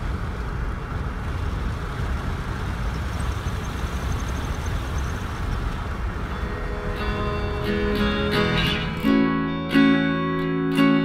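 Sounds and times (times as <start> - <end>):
wind buffeting microphone: 0.0 - 8.4
guitar music: 6.2 - 11.0.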